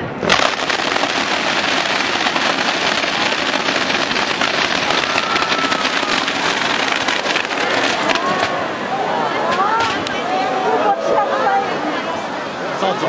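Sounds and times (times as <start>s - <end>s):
fireworks crackling: 0.0s - 10.2s.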